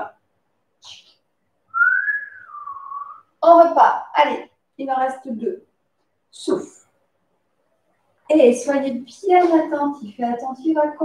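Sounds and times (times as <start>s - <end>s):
person whistling: 1.7s - 3.3s.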